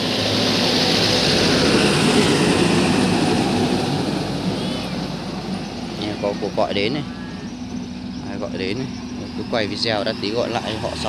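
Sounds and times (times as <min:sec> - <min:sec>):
motor vehicle passing by: 0:00.0 - 0:11.0
steady low hum: 0:00.0 - 0:11.0.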